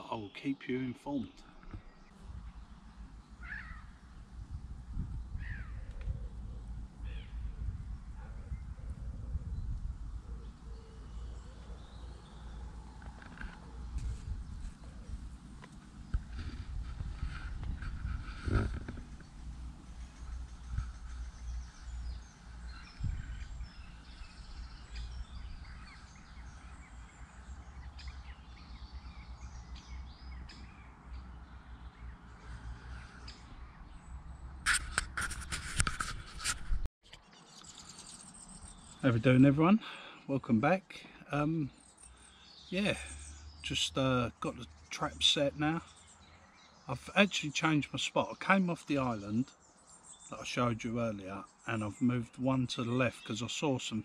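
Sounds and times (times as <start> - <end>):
short bird calls: 0.0 - 4.2, 5.3 - 7.6
low rumble on microphone: 1.7 - 30.9.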